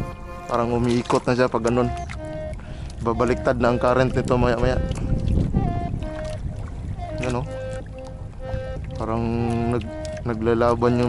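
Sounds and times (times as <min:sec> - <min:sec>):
boat engine rumble: 0:00.0 - 0:11.0
soft background music: 0:00.0 - 0:11.0
wind: 0:00.0 - 0:11.0.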